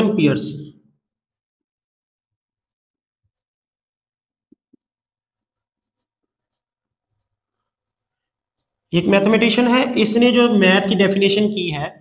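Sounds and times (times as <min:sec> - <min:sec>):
marker writing on whiteboard: 0:00.9 - 0:09.8.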